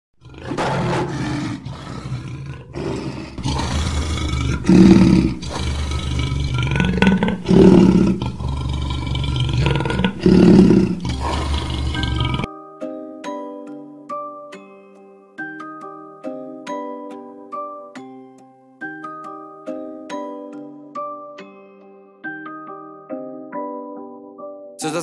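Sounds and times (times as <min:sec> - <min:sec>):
lion growling: 0:00.2 - 0:12.5
lion roaring: 0:00.2 - 0:12.5.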